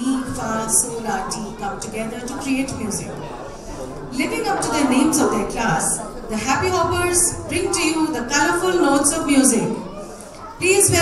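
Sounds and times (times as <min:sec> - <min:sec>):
woman speaking into microphone: 0:00.0 - 0:03.2, 0:04.1 - 0:10.0, 0:10.6 - 0:11.0.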